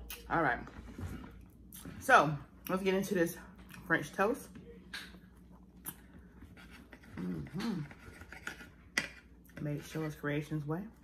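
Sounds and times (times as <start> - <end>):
knife and fork scraping a plate: 6.5 - 10.1.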